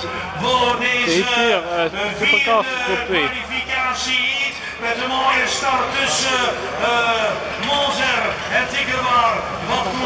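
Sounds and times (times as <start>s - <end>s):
man commentating: 0.4s - 10.0s.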